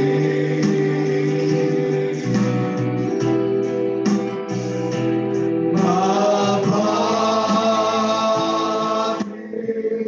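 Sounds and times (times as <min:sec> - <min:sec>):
men singing together: 0:00.0 - 0:02.2, 0:05.8 - 0:10.0
electronic keyboard: 0:00.0 - 0:10.0.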